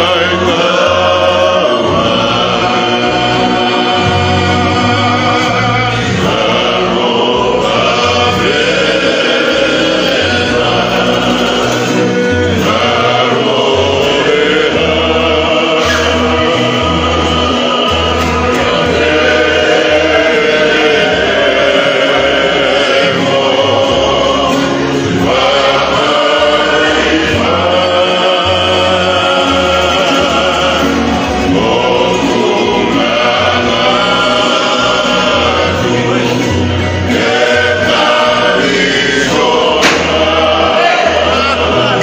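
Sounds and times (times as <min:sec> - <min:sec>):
acoustic guitars: 0:00.0 - 0:42.0
men singing together: 0:00.0 - 0:42.0.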